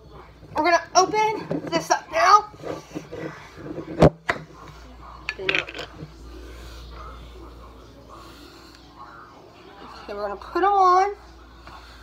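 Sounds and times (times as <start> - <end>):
dishes and utensils clattering: 5.2 - 6.1.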